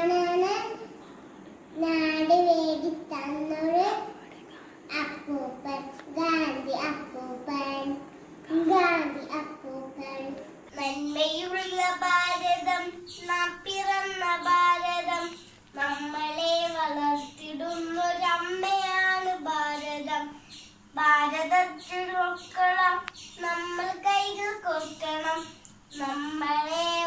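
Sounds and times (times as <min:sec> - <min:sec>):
girl singing: 0:00.0 - 0:01.0, 0:01.8 - 0:04.3, 0:04.9 - 0:27.0.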